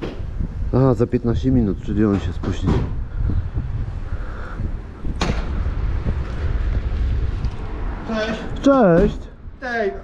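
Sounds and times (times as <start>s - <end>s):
wind buffeting microphone: 0.0s - 10.0s.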